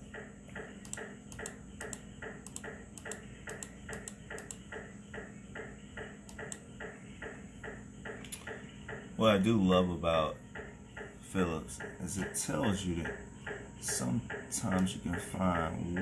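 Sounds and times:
rhythmic pings and clicks: 0.0 - 9.2, 10.4 - 16.0
steady low hum: 0.0 - 16.0.

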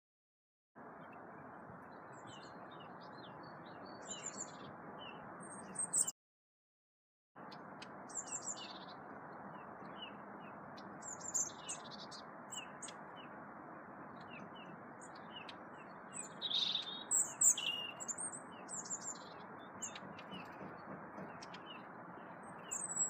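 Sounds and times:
small birds chirping: 0.8 - 6.1, 7.4 - 23.0
thin high bird calls: 14.2 - 23.0.

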